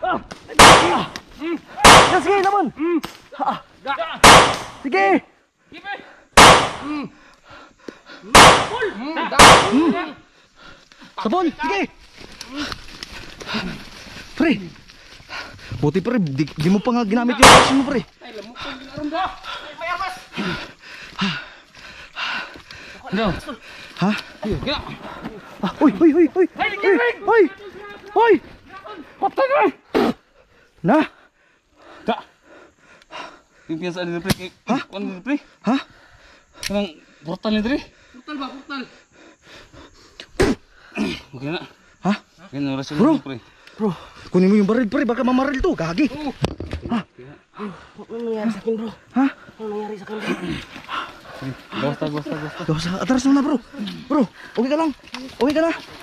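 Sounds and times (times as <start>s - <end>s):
gunshot bangs: 0.6s - 1.1s, 1.8s - 2.3s, 4.2s - 4.8s, 6.4s - 7.0s, 8.3s - 10.0s, 17.4s - 18.0s.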